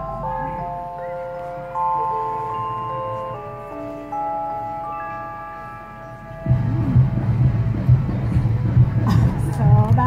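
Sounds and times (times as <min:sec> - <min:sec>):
electric keyboard chord ringing: 0:00.0 - 0:09.8
loud low rumble: 0:06.4 - 0:10.0.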